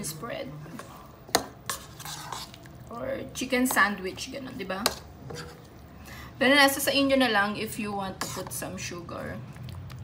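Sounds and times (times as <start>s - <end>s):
spoon stirring thick spread: 0.1s - 6.0s, 7.8s - 10.0s.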